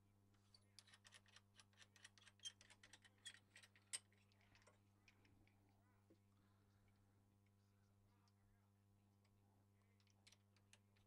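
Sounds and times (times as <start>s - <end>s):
low electrical hum: 0.0s - 11.0s
faint irregular clicks: 9.2s - 11.0s.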